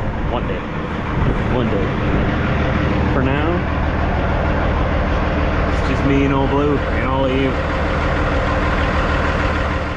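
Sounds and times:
diesel truck engine idling: 0:00.0 - 0:09.9.

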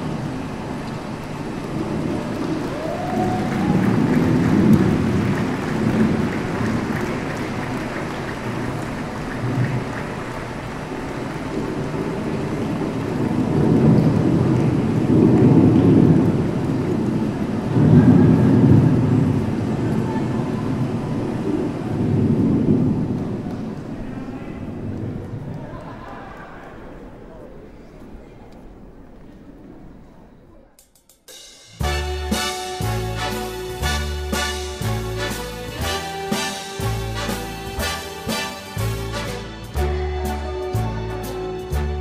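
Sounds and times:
audience applause: 0:00.0 - 0:20.9, 0:22.9 - 0:27.8
crowd noise: 0:00.0 - 0:42.0.

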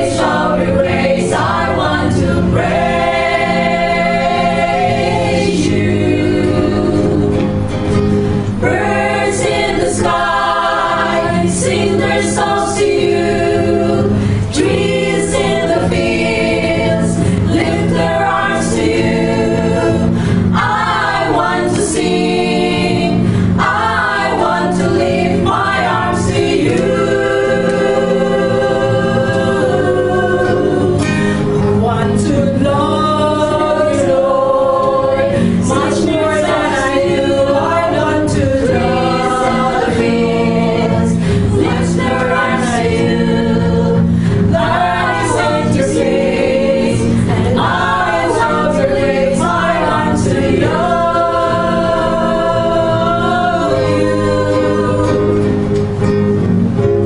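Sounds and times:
church choir singing: 0:00.0 - 0:56.9
steady low notes: 0:00.0 - 0:57.0.

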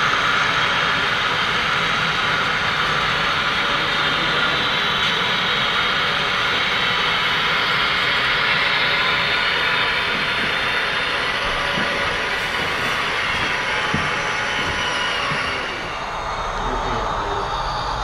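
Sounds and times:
model train wheels rolling on track: 0:00.0 - 0:17.8.

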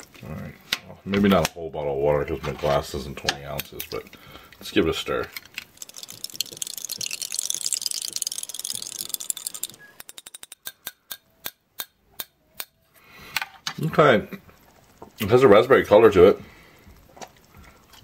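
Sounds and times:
sharp clicks: 0:05.6 - 0:12.8
plastic spoon stirring in glass: 0:05.8 - 0:10.6.

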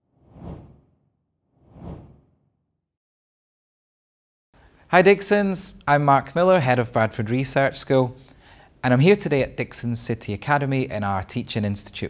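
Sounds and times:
whoosh sound effects: 0:00.2 - 0:00.9, 0:01.6 - 0:02.2.

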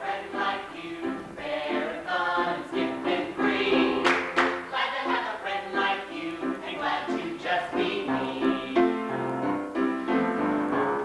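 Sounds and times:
voices singing in harmony: 0:00.0 - 0:09.4.

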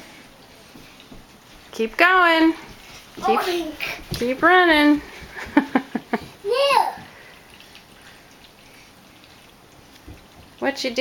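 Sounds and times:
toddler babbling: 0:03.2 - 0:04.0, 0:06.5 - 0:07.1.

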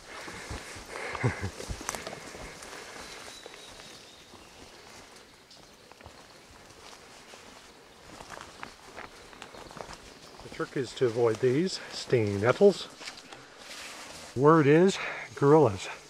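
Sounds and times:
footsteps on forest trail: 0:00.0 - 0:16.0.

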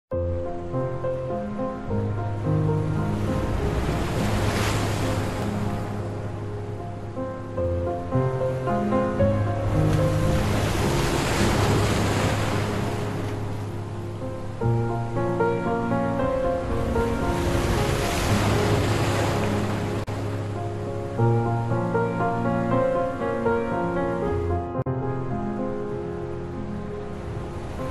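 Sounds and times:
slow instrumental music: 0:00.1 - 0:27.9
sea wave washing in: 0:01.9 - 0:24.4.

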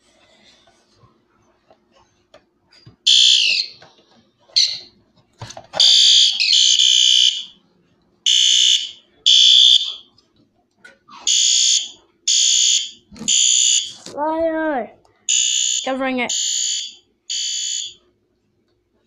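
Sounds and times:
fire alarm horn pulses: 0:03.1 - 0:03.8, 0:05.8 - 0:07.6, 0:08.3 - 0:10.1, 0:11.3 - 0:14.0, 0:15.3 - 0:18.0.

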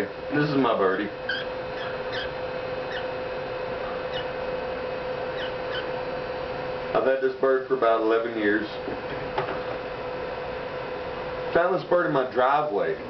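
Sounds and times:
steady low hum: 0:00.0 - 0:13.0
cockatiel chirping: 0:01.2 - 0:03.2, 0:04.1 - 0:04.4, 0:05.3 - 0:06.0.

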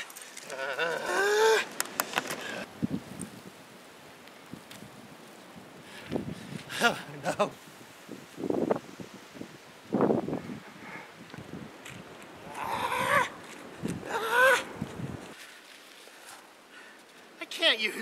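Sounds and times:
man crying out and groaning: 0:00.5 - 0:01.7, 0:06.7 - 0:07.5, 0:14.0 - 0:14.7.

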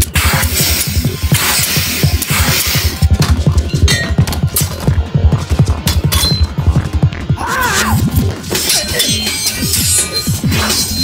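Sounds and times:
fast heavy beat action music: 0:00.0 - 0:11.0
glass shattering: 0:03.7 - 0:04.8, 0:05.8 - 0:06.6, 0:08.5 - 0:11.0.

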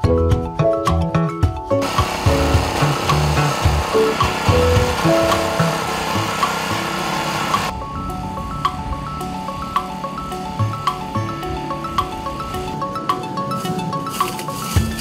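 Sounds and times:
background music: 0:00.0 - 0:15.0
power tiller engine running: 0:01.8 - 0:07.7.

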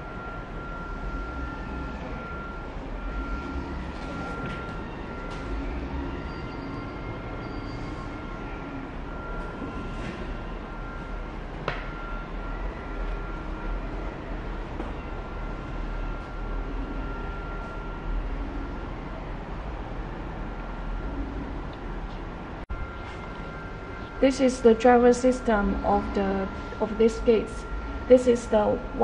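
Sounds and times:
thin high whine: 0:00.0 - 0:22.0, 0:22.7 - 0:29.0
low machinery rumble: 0:00.0 - 0:29.0.

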